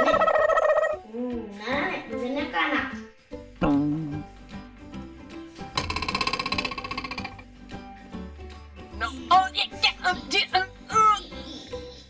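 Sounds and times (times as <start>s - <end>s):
background music: 0.0s - 12.0s
loud rapid rattling buzz: 5.8s - 7.5s.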